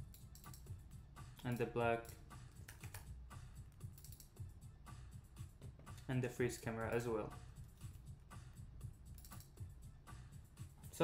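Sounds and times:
quiet background music: 0.0 - 11.0
computer keyboard typing: 2.0 - 3.1, 3.8 - 4.3.

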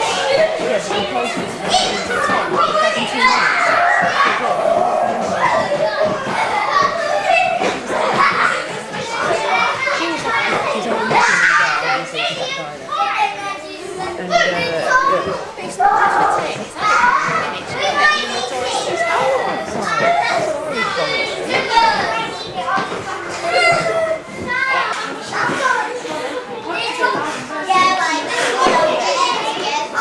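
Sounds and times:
young children chattering: 0.0 - 30.0.

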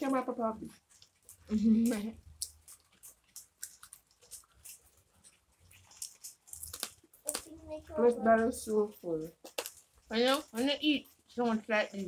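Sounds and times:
chewing crunchy food: 0.0 - 12.0
wet mouth clicks: 0.7 - 7.5.

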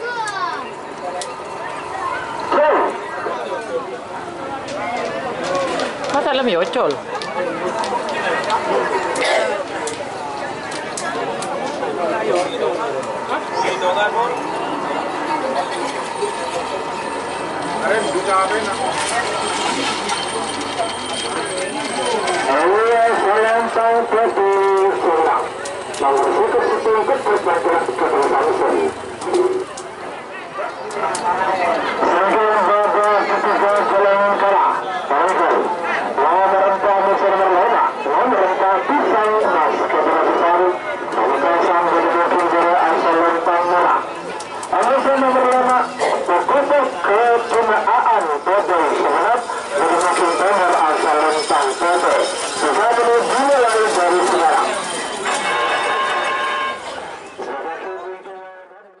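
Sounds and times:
loud voices shouting and talking: 0.0 - 59.0.

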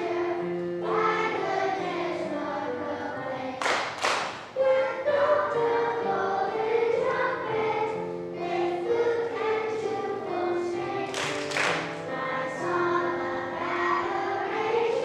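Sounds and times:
children's choir singing: 0.0 - 15.0
piano accompaniment: 0.0 - 15.0.

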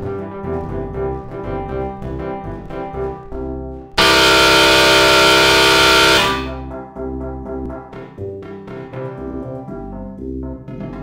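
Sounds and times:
bass: 0.0 - 11.0
harsh sustained synth chord: 4.0 - 6.6.

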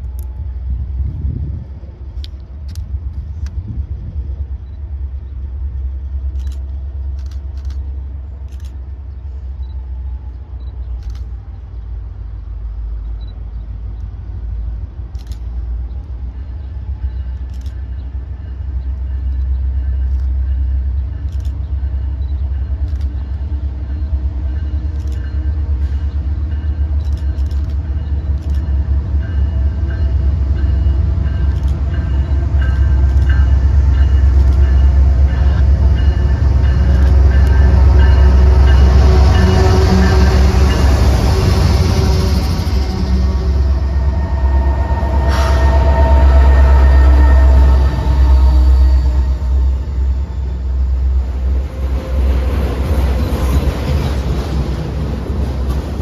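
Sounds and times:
freight cars rumbling and clattering: 0.0 - 46.2, 47.7 - 56.0
diesel locomotive engines: 0.0 - 56.0
strong low rumble: 0.0 - 56.0
train rolling noise: 0.0 - 56.0.

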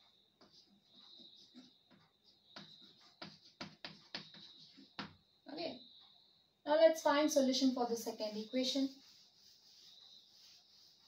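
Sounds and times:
chalk tapping and scratching: 0.0 - 5.2, 7.3 - 11.0.

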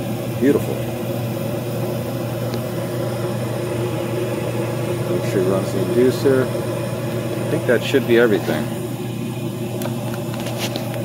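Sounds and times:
furnace motor hum: 0.0 - 11.0.

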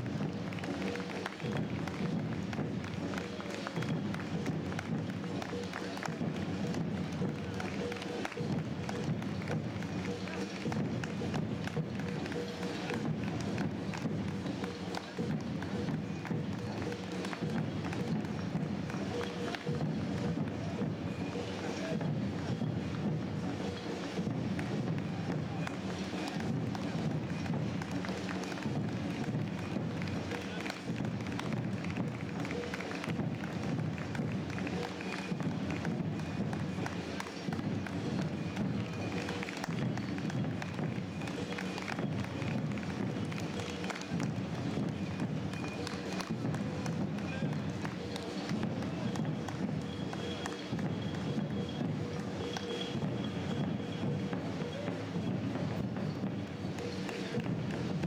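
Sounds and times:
voices: 0.0 - 57.6
music: 0.0 - 58.0
runners' footsteps on asphalt: 0.0 - 58.0.

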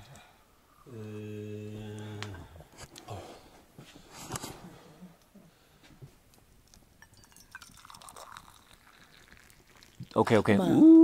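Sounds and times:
hot liquid pouring: 7.0 - 10.6.

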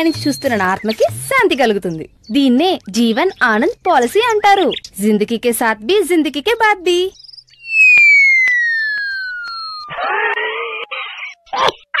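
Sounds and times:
falling whistle tone: 7.5 - 10.4
harsh noisy cry: 9.9 - 12.0.

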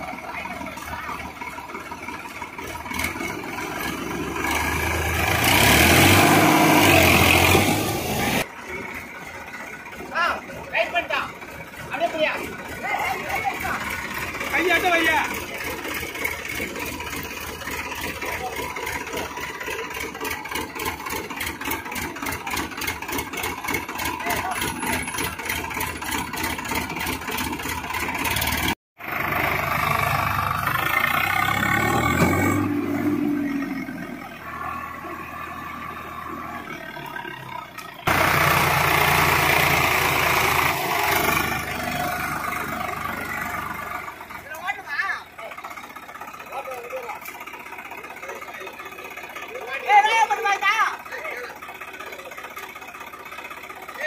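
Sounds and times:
tractor diesel engine running: 0.0 - 54.0.

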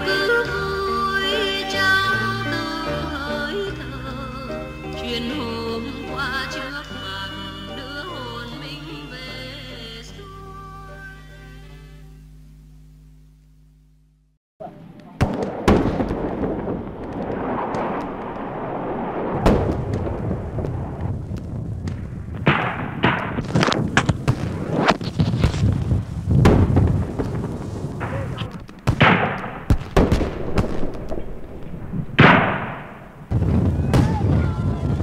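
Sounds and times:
constant rumble: 0.0 - 35.0
gunshots: 15.2 - 21.0, 21.8 - 25.7, 26.4 - 35.0
explosions: 15.2 - 35.0.

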